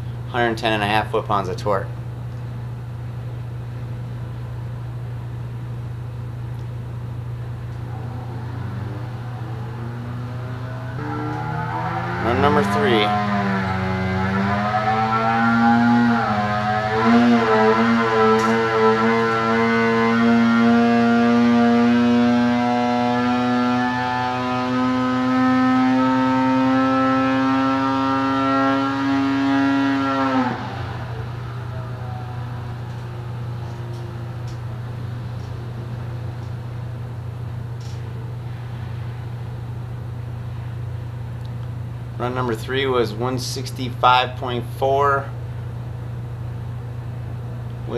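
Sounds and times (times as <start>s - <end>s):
steady low hum: 0.0s - 47.9s
two-stroke engine revving: 7.9s - 33.6s.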